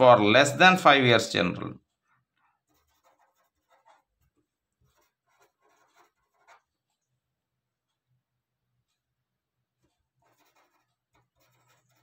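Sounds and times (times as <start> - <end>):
pen scratching on paper: 1.8 - 7.3, 9.7 - 12.0.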